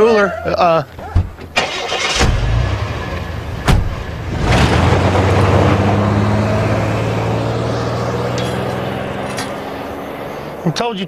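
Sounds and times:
car engine revving: 1.5 - 11.0.

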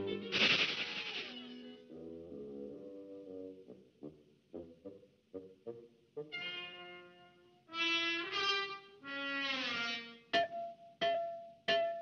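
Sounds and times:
orchestral crash: 0.0 - 1.9
orchestral cartoon music: 0.0 - 12.0.

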